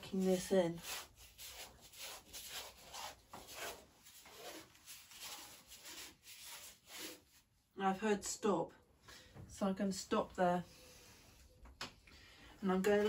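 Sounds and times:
paintbrush scrubbing on canvas: 0:00.0 - 0:07.5.

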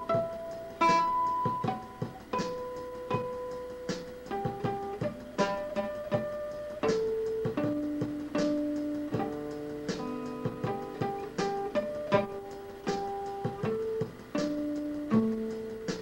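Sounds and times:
fingerstyle acoustic guitar: 0:00.0 - 0:16.0.

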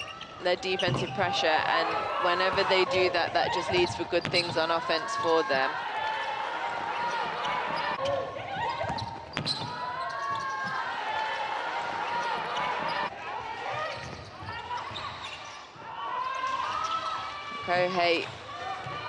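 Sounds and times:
players' voices: 0:00.0 - 0:19.0
sneakers squeaking: 0:00.0 - 0:19.0.

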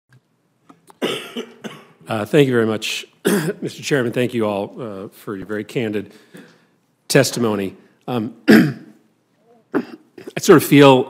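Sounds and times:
man coughing: 0:01.0 - 0:02.0, 0:03.2 - 0:03.7, 0:08.4 - 0:09.0, 0:09.6 - 0:10.4.

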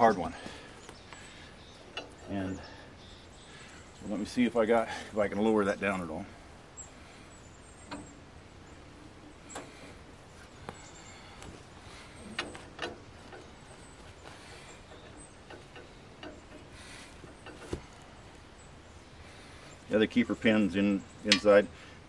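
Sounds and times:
light clicks and knocks: 0:10.6 - 0:18.4.

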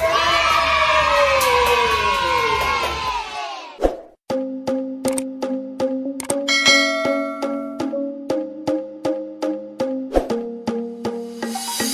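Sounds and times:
children cheering: 0:00.0 - 0:03.8.

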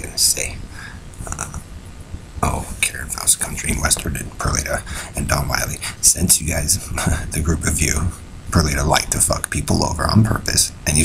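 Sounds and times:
steady low rumble: 0:00.0 - 0:11.0
man making throaty vocal sound: 0:01.2 - 0:01.6, 0:02.4 - 0:08.9.

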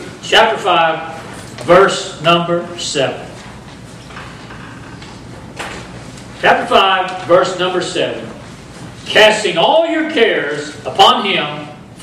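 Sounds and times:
rustling and shuffling of people: 0:00.0 - 0:09.7.

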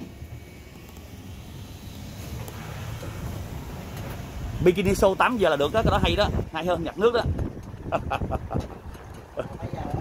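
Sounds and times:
cart rolling along road: 0:00.0 - 0:10.0
wind noise on microphone: 0:02.6 - 0:10.0.

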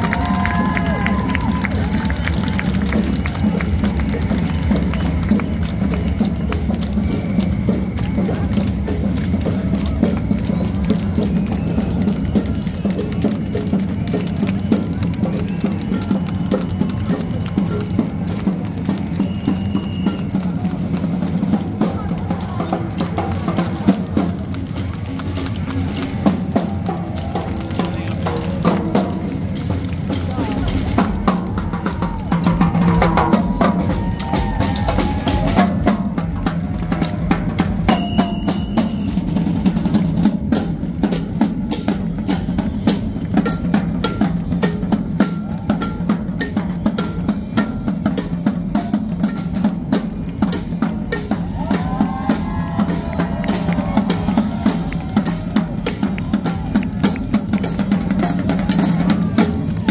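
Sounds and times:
crowd voices: 0:00.0 - 0:59.9
marching percussion band: 0:00.0 - 0:59.9.

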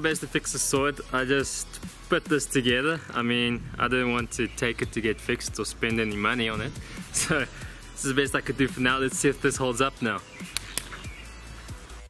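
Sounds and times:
electronic music: 0:03.4 - 0:12.0
sharp clicks: 0:10.4 - 0:11.0.

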